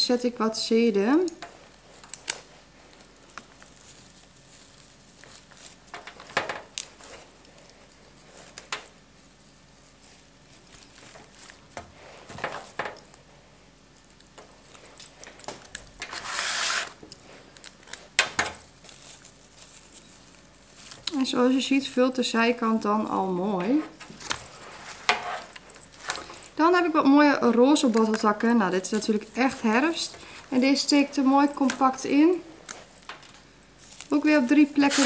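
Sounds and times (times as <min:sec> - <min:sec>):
stems clicking and rustling: 0:01.0 - 0:35.0.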